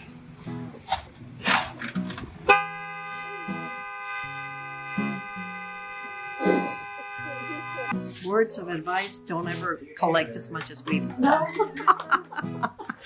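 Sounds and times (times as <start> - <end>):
soft guitar music: 0.0 - 13.0
car horn long blast: 2.4 - 8.0.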